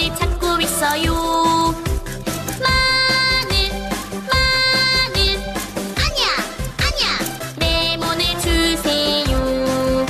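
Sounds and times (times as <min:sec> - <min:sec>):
instrumental children's music: 0:00.0 - 0:10.0.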